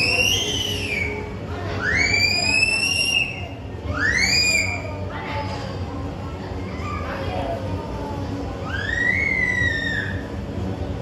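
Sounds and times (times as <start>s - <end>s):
panda cub squealing: 8.7s - 10.2s.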